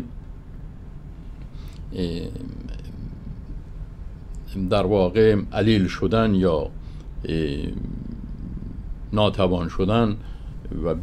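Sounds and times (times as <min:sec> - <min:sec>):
man speaking: 0:01.9 - 0:03.3, 0:04.5 - 0:11.0.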